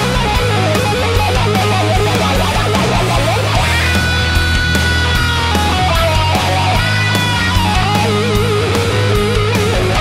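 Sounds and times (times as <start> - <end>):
bass: 0.0 - 10.0
drums: 0.0 - 10.0
electric guitar lead: 0.0 - 10.0.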